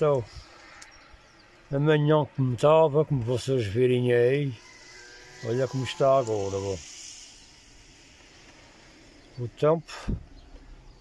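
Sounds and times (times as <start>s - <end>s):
rain hissing: 5.8s - 11.0s.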